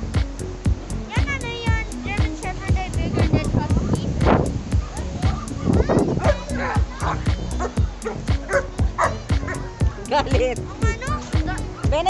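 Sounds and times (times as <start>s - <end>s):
music with fast beat: 0.0s - 12.0s.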